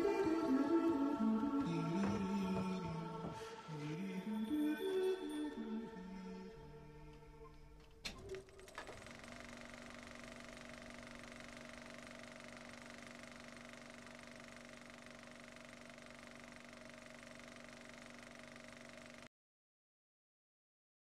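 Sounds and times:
faint steady hum: 0:00.0 - 0:19.3.

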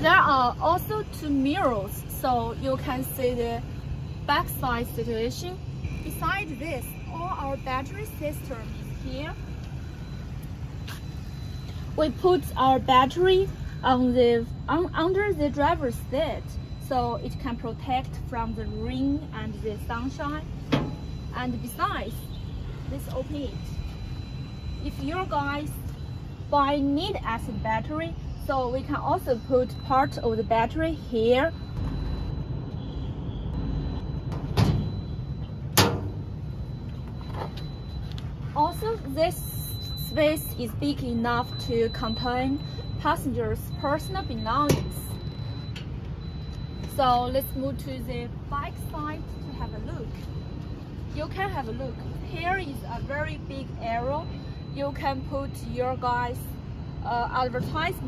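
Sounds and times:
low steady rumble: 0:00.0 - 0:58.0.

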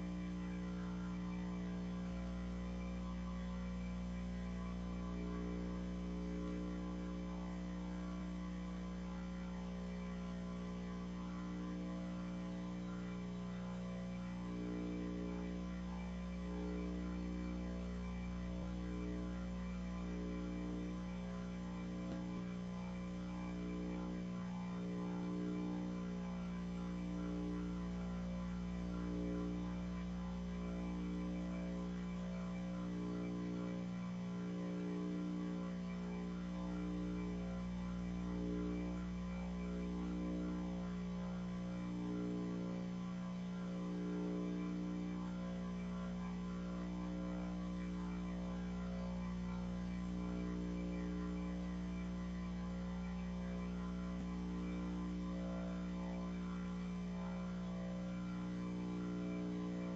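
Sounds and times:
electrical hum: 0:00.0 - 0:59.9.

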